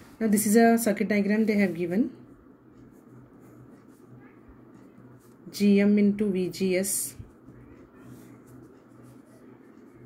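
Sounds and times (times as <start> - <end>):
pen scratching on paper: 2.8 - 5.4, 7.2 - 10.0.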